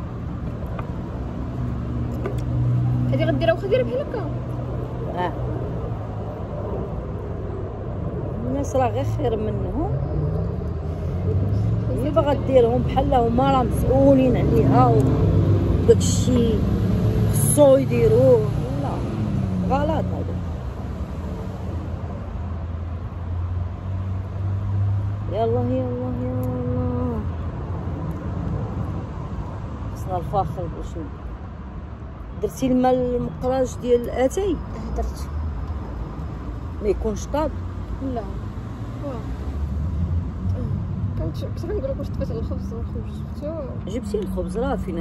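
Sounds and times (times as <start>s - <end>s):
outdoor background noise: 0.0s - 45.0s
vehicle engine humming: 0.0s - 45.0s.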